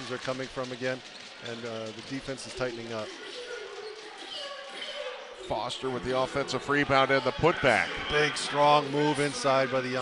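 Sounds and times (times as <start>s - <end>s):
crowd murmur: 0.0s - 10.0s
faint arena voices: 0.0s - 10.0s.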